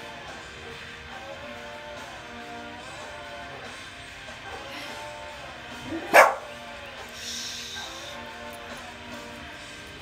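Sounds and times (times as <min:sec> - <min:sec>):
guitar music: 0:05.3 - 0:07.1
dog barking: 0:06.0 - 0:06.6.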